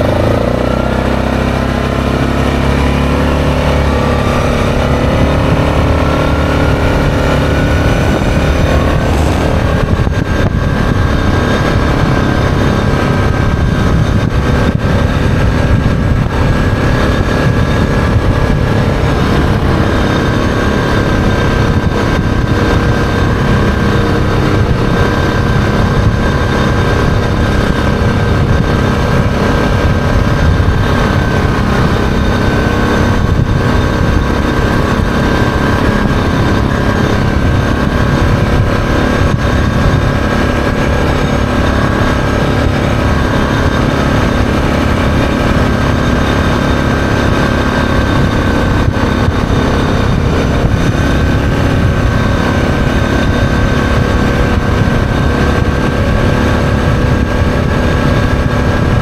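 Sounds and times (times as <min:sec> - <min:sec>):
atv engine running steadily: 0:00.0 - 0:59.0
rush of riding wind: 0:00.0 - 0:59.0.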